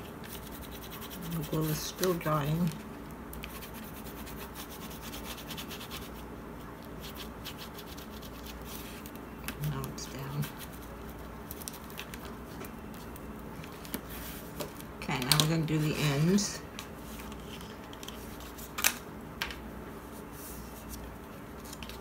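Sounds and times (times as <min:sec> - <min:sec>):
bone folder scratching paper: 0:00.2 - 0:02.2, 0:03.4 - 0:06.2, 0:07.0 - 0:09.1.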